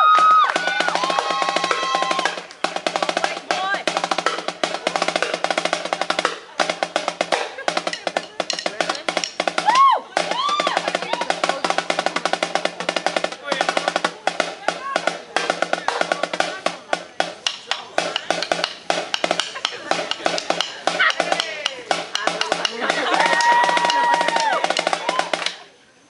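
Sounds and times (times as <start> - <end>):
snare drum rolls: 0.0 - 25.7
voices calling out: 0.0 - 26.0.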